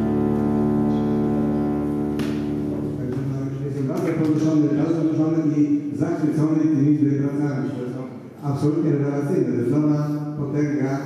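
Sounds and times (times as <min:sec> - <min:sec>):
classical guitar and double bass chord: 0:00.0 - 0:03.7.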